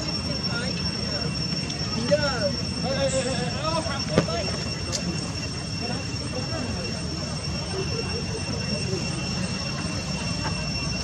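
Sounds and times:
continuous low rumble: 0.0s - 11.0s
steady high-pitched whine: 0.0s - 11.0s.

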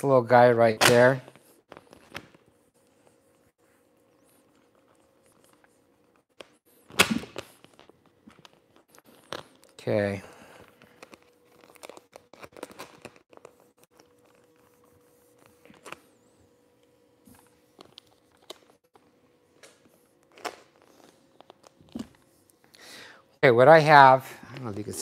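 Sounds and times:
vinyl wrap crinkling and rubbing: 0.1s - 16.4s
vinyl wrap rustling: 6.4s - 16.2s.

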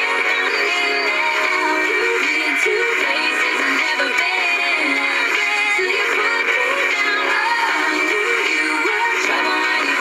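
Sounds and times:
pop song on car radio: 0.0s - 10.0s.

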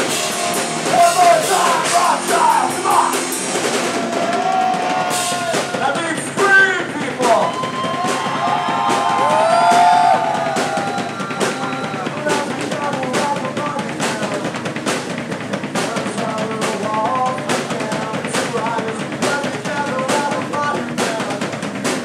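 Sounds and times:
bass guitar: 0.0s - 22.0s
drum kit beat: 0.0s - 22.0s
vocalist singing: 0.8s - 3.4s, 11.2s - 14.6s, 15.8s - 21.6s.

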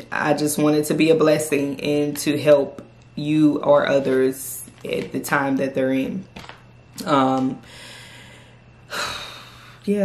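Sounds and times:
woman breathing: 7.6s - 9.9s.

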